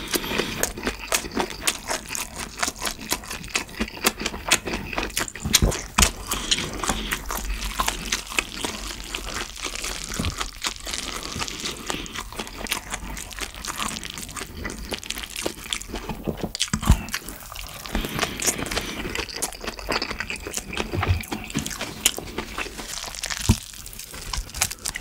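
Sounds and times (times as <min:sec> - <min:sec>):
chewing and crunching food: 0:00.0 - 0:25.0.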